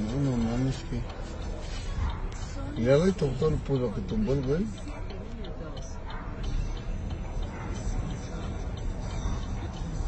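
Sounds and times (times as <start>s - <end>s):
light regular ticking: 0.0s - 10.0s.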